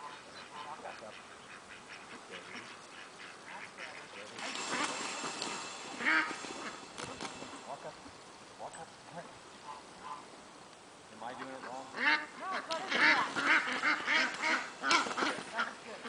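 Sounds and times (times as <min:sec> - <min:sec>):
ducks quacking: 0:00.0 - 0:08.2, 0:09.1 - 0:10.4, 0:11.2 - 0:16.0.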